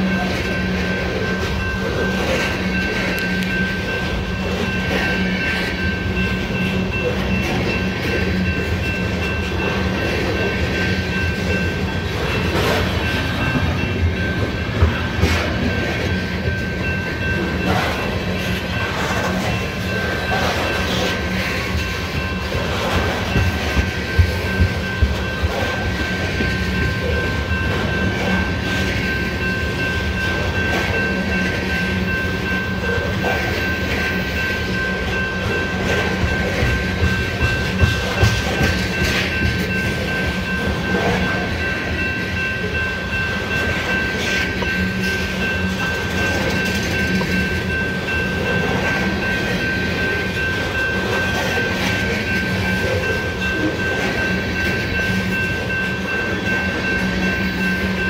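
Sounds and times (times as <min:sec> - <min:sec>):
freight train wheels rumbling: 0:00.0 - 0:58.0
steady high-pitched tone: 0:00.0 - 0:58.0.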